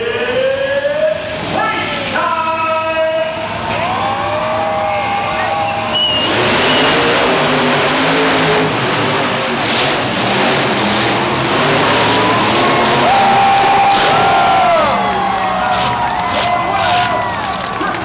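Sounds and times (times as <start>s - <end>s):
crowd shouting and cheering: 0.0s - 8.1s, 11.2s - 18.0s
truck engines revving: 0.0s - 18.0s.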